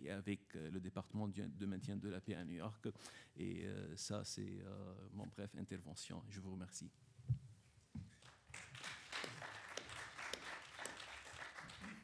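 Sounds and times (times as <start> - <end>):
audience clapping: 8.2 - 12.0.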